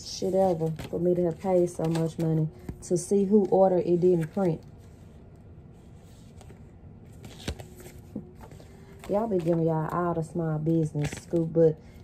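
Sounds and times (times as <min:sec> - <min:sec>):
paper rustling: 0:00.1 - 0:05.1, 0:05.8 - 0:10.2, 0:10.8 - 0:11.5
paper handling clicks: 0:00.4 - 0:04.7, 0:10.8 - 0:11.5.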